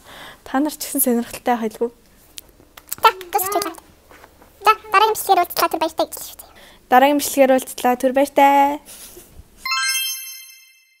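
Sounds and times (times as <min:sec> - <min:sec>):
bright chime: 0:09.6 - 0:11.0.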